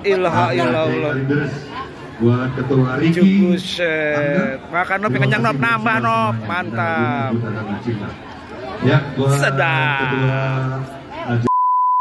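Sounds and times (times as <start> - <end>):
electronic beep tone: 11.5 - 12.0.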